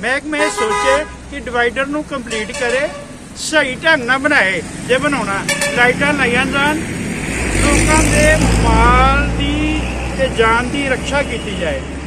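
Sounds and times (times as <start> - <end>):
man's voice: 0.0 - 6.9, 7.5 - 11.9
vehicle passing by: 1.1 - 12.0.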